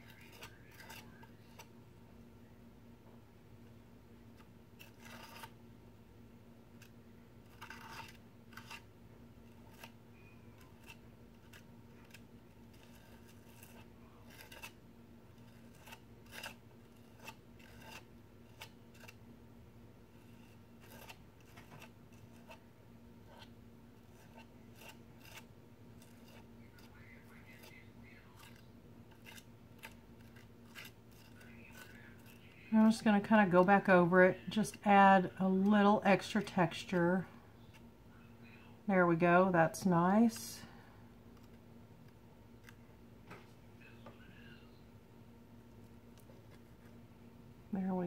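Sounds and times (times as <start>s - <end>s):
palette knife scraping paste: 0.0s - 1.7s, 4.4s - 5.6s, 6.8s - 19.2s, 20.1s - 34.6s
steady low hum: 0.0s - 48.0s.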